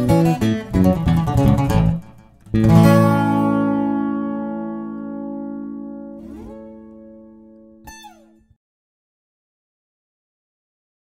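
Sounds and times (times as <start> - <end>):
acoustic guitars and bass chord: 0.0 - 8.0
guitar string slides: 4.9 - 8.5.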